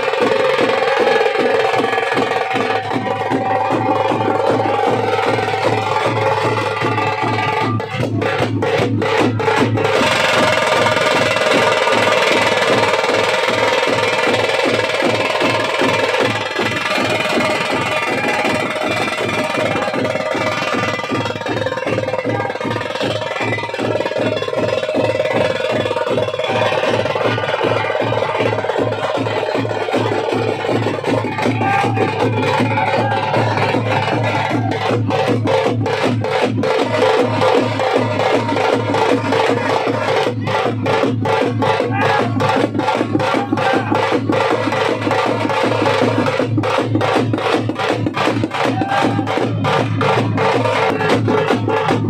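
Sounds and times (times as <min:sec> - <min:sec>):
fast drumbeats: 0:00.0 - 0:52.0.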